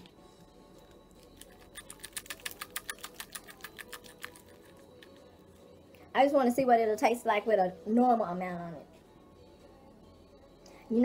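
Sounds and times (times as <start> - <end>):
seasoning shaker ticking: 1.6 - 5.1.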